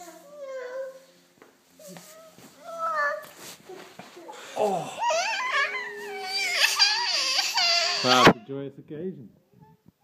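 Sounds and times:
child crying wail: 0:04.5 - 0:08.3.

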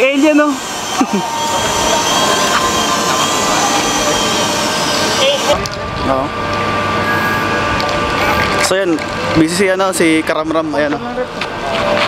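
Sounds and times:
voices calling out: 0:00.0 - 0:09.3
mechanical whirring hum: 0:00.0 - 0:12.0.

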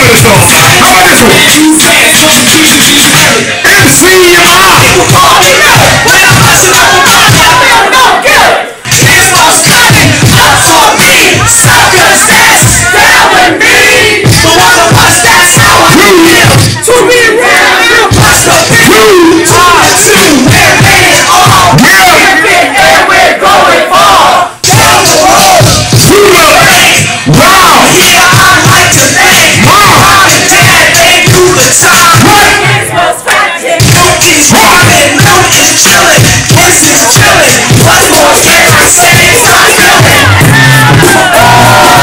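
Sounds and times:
crowd shouting along: 0:00.0 - 0:42.0
live hip hop music: 0:00.0 - 0:42.0.

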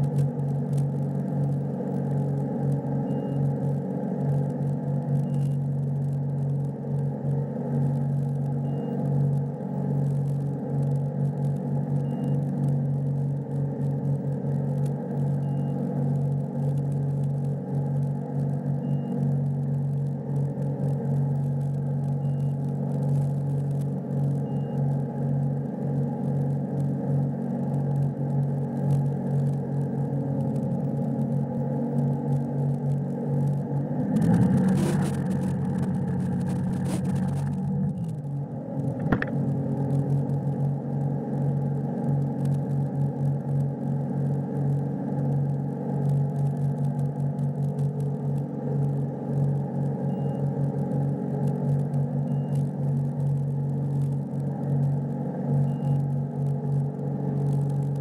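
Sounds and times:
boat engine running: 0:33.5 - 0:40.9.

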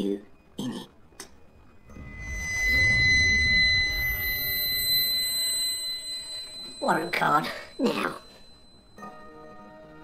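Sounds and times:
high-pitched ringing tone: 0:01.5 - 0:10.0
low rumble: 0:01.6 - 0:06.4.

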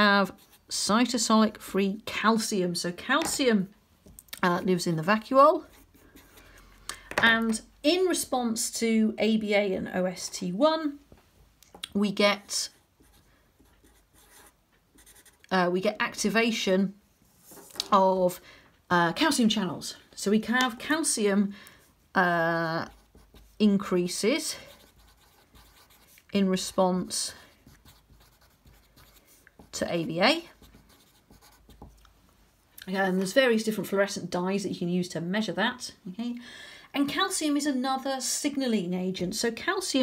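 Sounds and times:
marker pen scratching on whiteboard: 0:12.4 - 0:15.5, 0:22.8 - 0:23.9, 0:24.5 - 0:26.2, 0:27.6 - 0:32.0.

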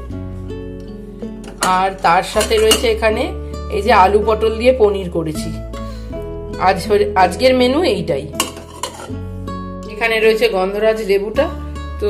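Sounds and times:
background music: 0:00.0 - 0:12.0
glass lid clinking on pot: 0:02.4 - 0:02.9, 0:08.4 - 0:09.1.

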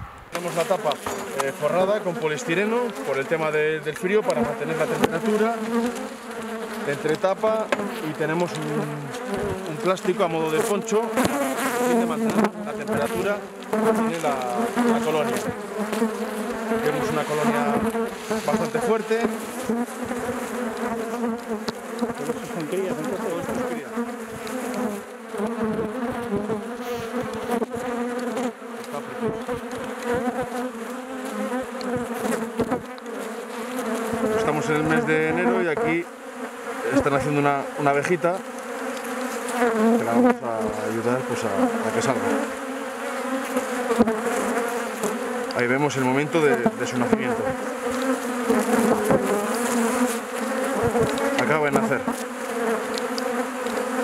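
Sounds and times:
bees buzzing: 0:00.0 - 0:54.0.

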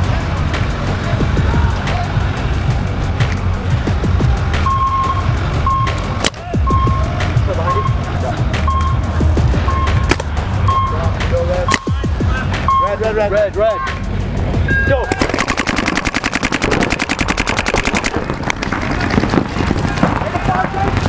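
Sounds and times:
background crowd voices: 0:00.0 - 0:21.0
steady low rumble: 0:00.0 - 0:21.0
short electronic beeps: 0:04.6 - 0:06.0, 0:06.7 - 0:07.1, 0:07.7 - 0:08.1, 0:08.7 - 0:09.0, 0:09.7 - 0:10.1, 0:10.7 - 0:11.0, 0:12.6 - 0:13.0, 0:14.7 - 0:15.1.

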